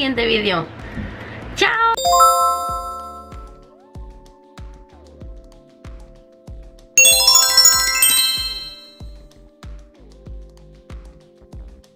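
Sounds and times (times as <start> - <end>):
bright bell-like chime: 2.0 - 3.6, 7.0 - 9.0.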